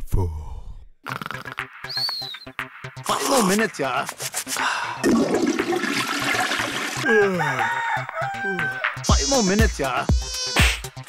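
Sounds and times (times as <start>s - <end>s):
rushing water: 5.1s - 7.1s.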